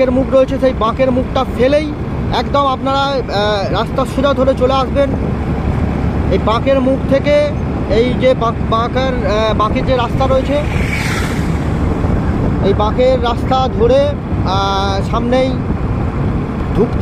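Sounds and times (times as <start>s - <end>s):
man talking: 0.0s - 5.2s, 6.3s - 10.7s, 12.6s - 15.6s
vehicle wind and road noise: 0.0s - 17.0s.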